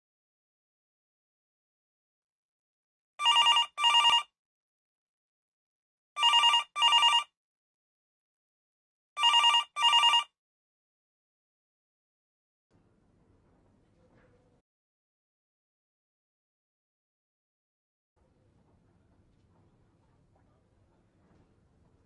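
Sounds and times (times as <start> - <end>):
phone ringing: 3.2 - 4.3, 6.2 - 7.4, 9.2 - 10.4.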